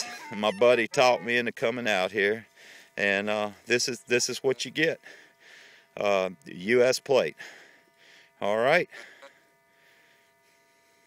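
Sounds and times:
thin high hum: 0.0 - 11.0.

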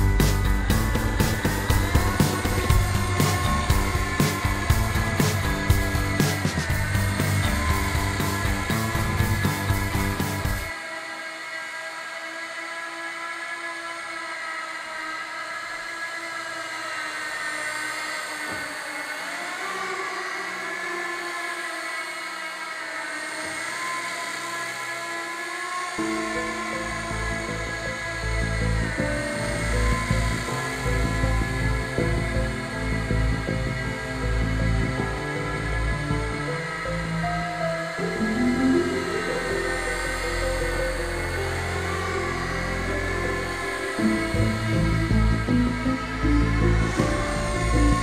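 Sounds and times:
background music with a beat: 0.0 - 10.7, 43.8 - 48.0
rc helicopter motor whining: 0.0 - 48.0.

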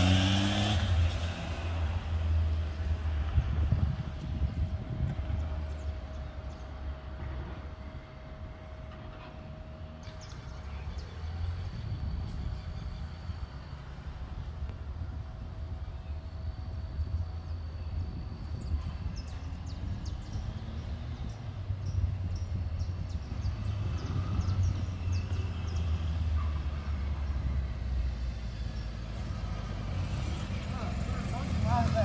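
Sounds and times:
motorcycle engine approaching: 0.0 - 32.0
traffic rumble: 0.0 - 32.0
wind: 0.0 - 32.0.

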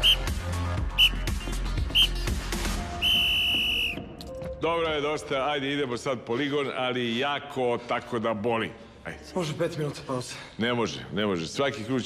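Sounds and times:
coach's whistle blasts: 0.0 - 2.2, 3.0 - 4.1
background music with bass beat: 0.0 - 4.0.

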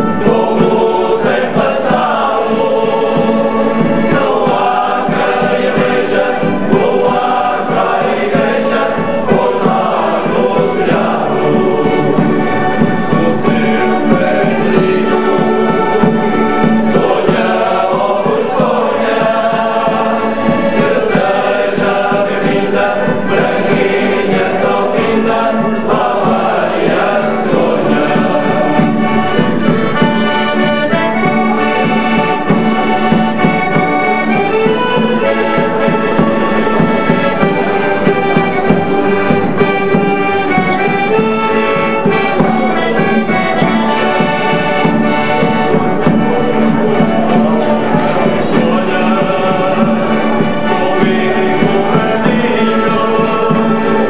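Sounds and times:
accordion: 0.0 - 54.0
acoustic guitars: 0.0 - 54.0
men's choir singing: 0.0 - 54.0.

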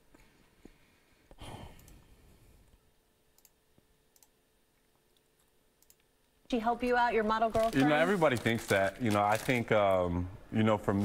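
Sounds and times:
faint clicks: 5.1 - 6.1.

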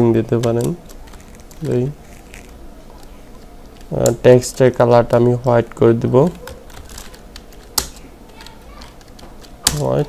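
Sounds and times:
computer keyboard typing: 0.2 - 4.6, 6.3 - 10.0.

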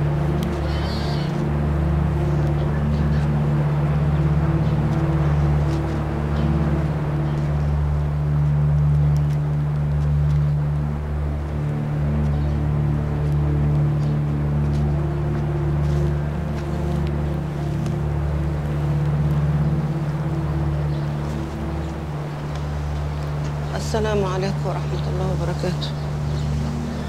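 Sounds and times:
low drone of held tones: 0.0 - 27.0
faint scattered clicks: 0.2 - 1.5, 8.3 - 27.0.

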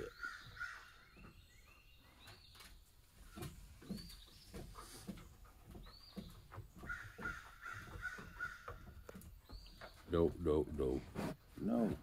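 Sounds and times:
light knocks and clicks: 2.2 - 10.1.

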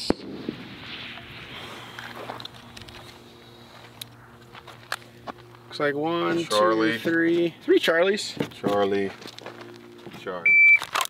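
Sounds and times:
footsteps crunching on dirt: 1.4 - 10.4.

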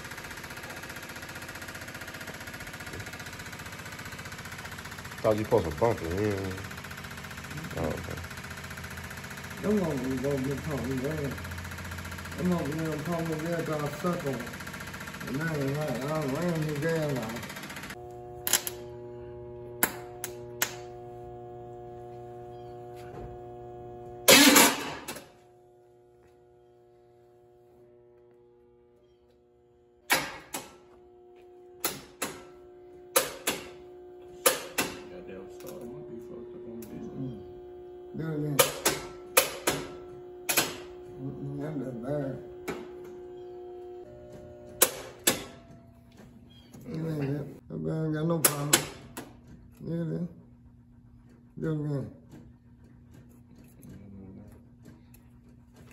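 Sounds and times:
fuel pump humming: 0.0 - 29.0, 29.6 - 47.6.

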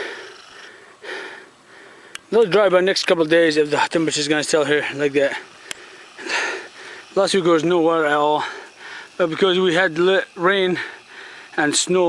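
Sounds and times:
man breathing close to microphone: 0.0 - 2.3, 5.4 - 7.2, 8.4 - 9.2, 10.7 - 11.6
faint steady hiss: 0.0 - 12.0.

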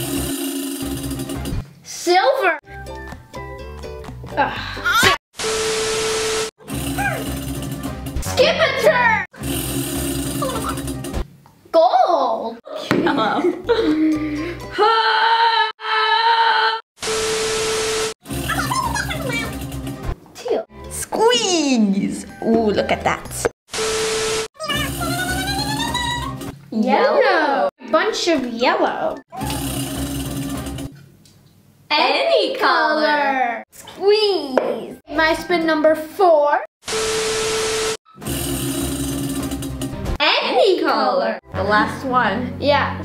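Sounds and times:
wavering voice-like sound: 24.6 - 26.3, 29.3 - 29.8.

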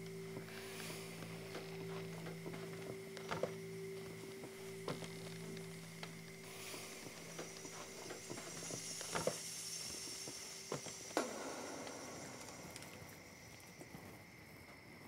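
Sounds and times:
low steady hum: 0.0 - 14.6
faint hiss: 0.0 - 15.0.

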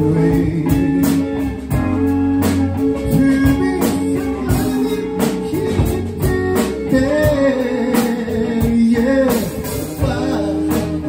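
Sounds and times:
drum kit beat: 0.0 - 11.0
electric bass: 0.0 - 11.0
electric guitars: 0.0 - 11.0.

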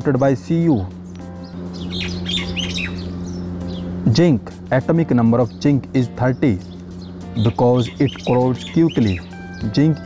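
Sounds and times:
background music low chord: 0.0 - 10.0
high bird-like chirps: 1.0 - 4.0, 6.6 - 10.0.

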